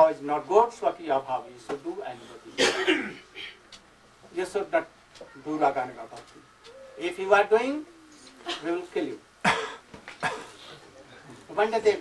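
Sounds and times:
man coughing: 0:02.5 - 0:03.6, 0:09.4 - 0:10.7.

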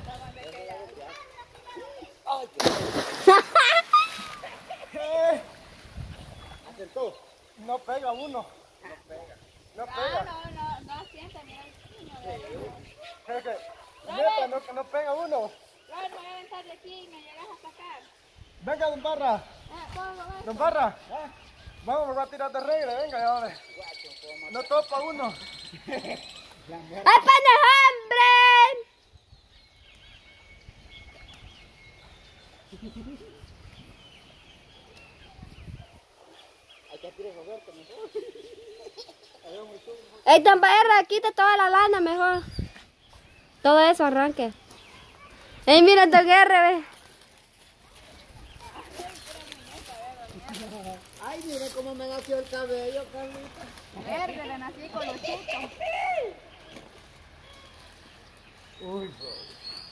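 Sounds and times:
body splashing into water: 0:02.6 - 0:04.7
water churning: 0:02.6 - 0:06.0.

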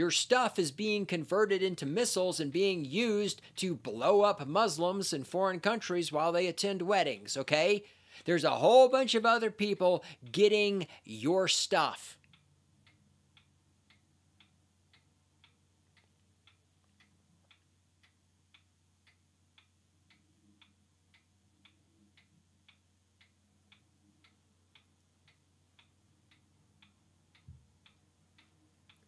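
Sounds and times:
low steady hum: 0:00.0 - 0:29.0
faint ticking: 0:00.1 - 0:29.0.

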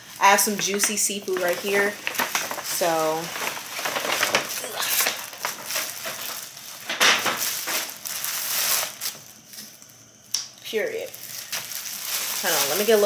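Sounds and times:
paper and plastic bags rustling: 0:00.0 - 0:09.9, 0:10.8 - 0:13.0.

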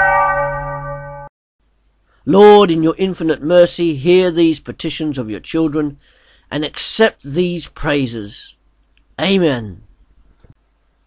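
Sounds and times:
bell ringing: 0:00.0 - 0:01.3.

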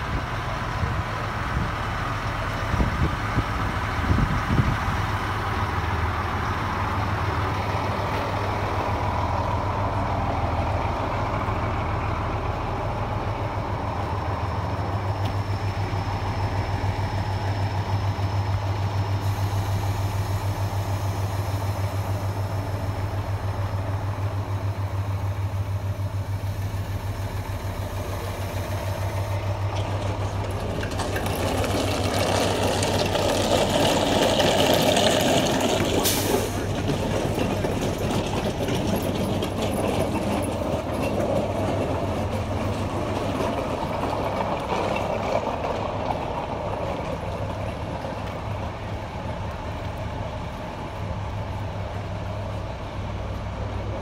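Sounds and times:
diesel engine droning: 0:00.0 - 0:54.0.

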